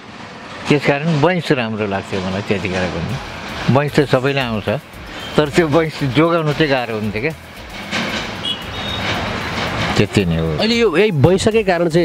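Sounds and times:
vehicle passing: 0:00.0 - 0:11.6.

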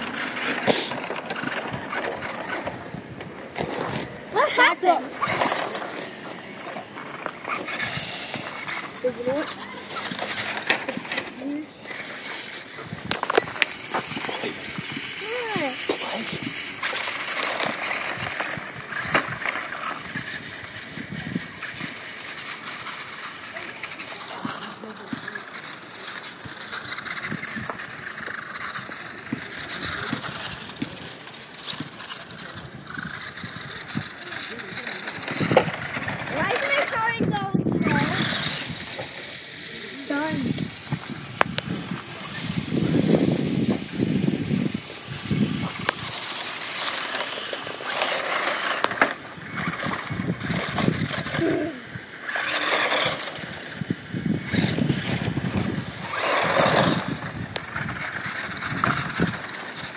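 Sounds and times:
rc truck motor running: 0:00.0 - 0:59.9
tyres on gravel: 0:00.0 - 0:59.9.

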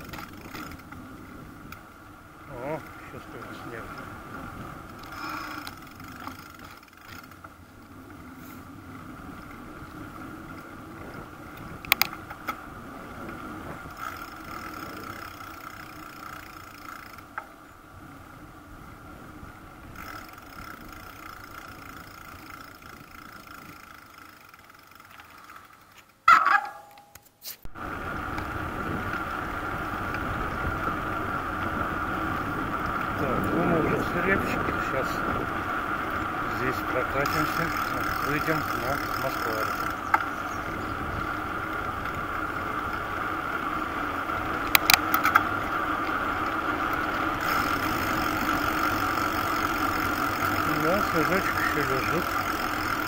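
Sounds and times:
bicycle tyres on asphalt: 0:00.0 - 0:53.0.

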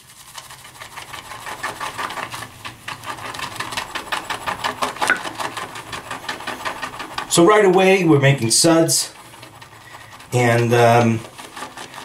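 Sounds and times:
shaving brush whisking lather in bowl: 0:00.0 - 0:12.0.

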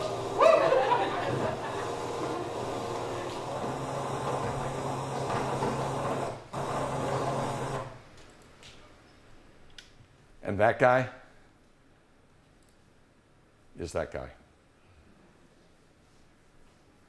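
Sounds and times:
boat engine running: 0:00.0 - 0:07.9.

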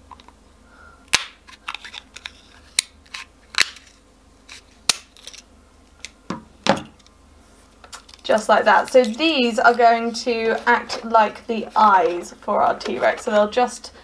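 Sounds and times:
scissors snapping through plastic: 0:01.1 - 0:03.9.

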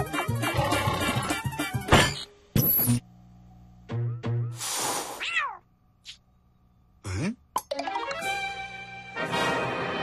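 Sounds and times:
cartoon cat meow: 0:05.2 - 0:05.6.

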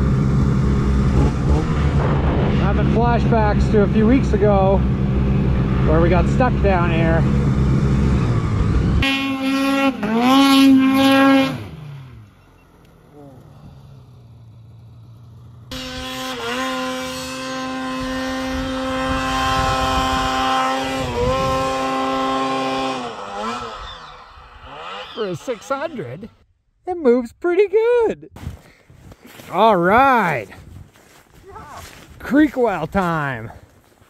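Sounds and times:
snowmobile engine revving: 0:00.0 - 0:26.4.

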